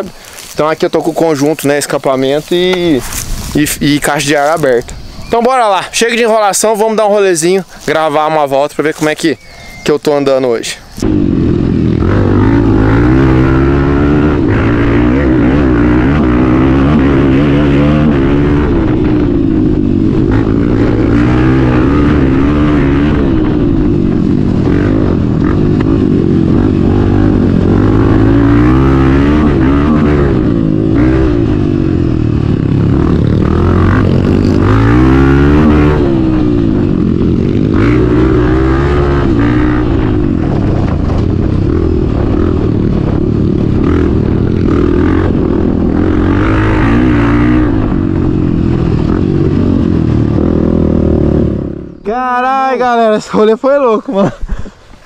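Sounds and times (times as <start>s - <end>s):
motorcycle engine revving: 10.4s - 53.0s.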